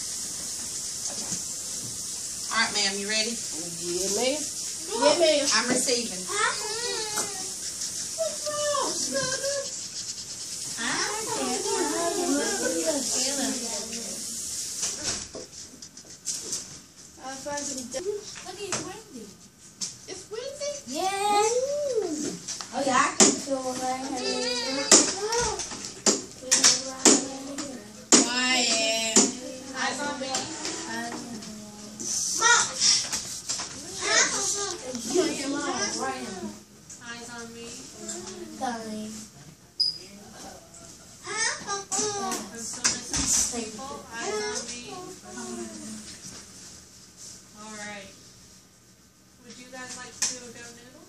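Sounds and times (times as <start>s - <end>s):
children chattering: 10.8s - 14.4s, 23.8s - 25.6s, 33.8s - 36.6s, 43.6s - 46.1s.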